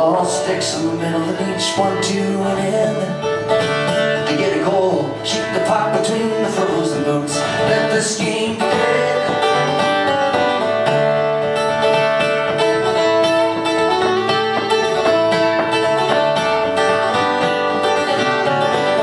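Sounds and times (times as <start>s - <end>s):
second guitar: 0.0s - 19.0s
strummed acoustic guitar: 0.0s - 19.0s.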